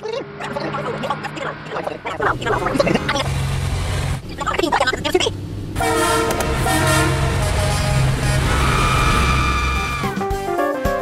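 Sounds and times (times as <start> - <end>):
low engine rumble: 0.0 - 10.1
vehicle horn blaring: 5.8 - 10.2.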